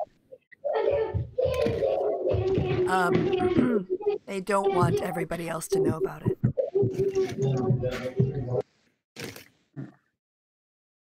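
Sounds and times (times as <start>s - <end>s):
person talking: 2.8s - 8.6s.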